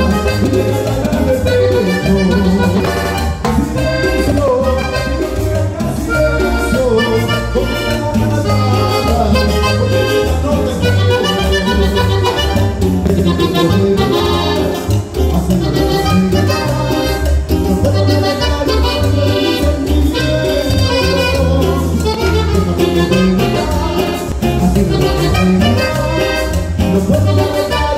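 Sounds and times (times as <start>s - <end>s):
latin dance band playing: 0.0s - 27.9s.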